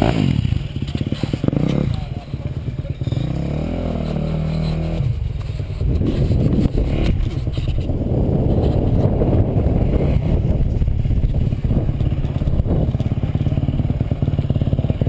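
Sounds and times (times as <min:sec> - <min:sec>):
dirt bike engine idling: 0:00.0 - 0:15.0.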